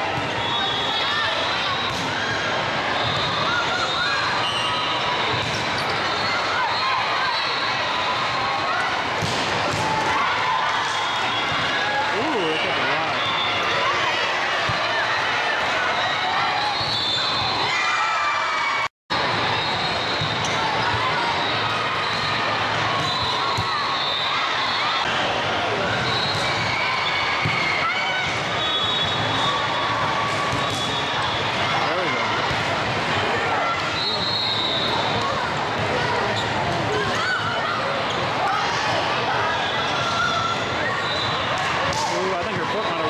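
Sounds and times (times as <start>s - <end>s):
referee's whistle: 0.4s - 1.2s, 12.4s - 13.7s, 16.6s - 17.7s, 23.0s - 25.0s, 26.0s - 26.5s, 28.5s - 29.6s, 33.9s - 35.0s, 41.0s - 41.5s
din of many voices: 5.1s - 16.8s, 20.5s - 43.0s.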